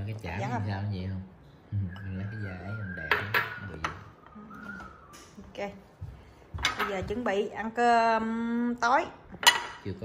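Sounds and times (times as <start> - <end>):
ceramic tableware clinking: 3.0 - 4.0, 9.4 - 10.0.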